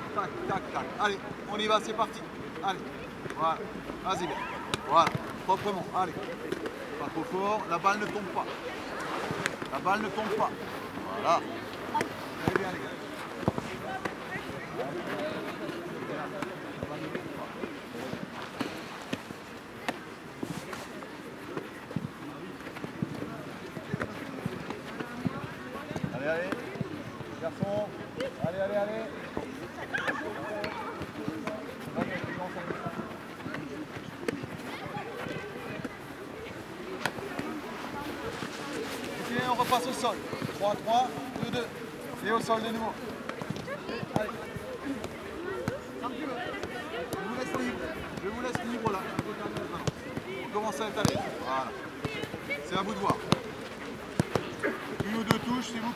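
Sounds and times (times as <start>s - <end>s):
footballs being kicked: 11.9s - 55.9s.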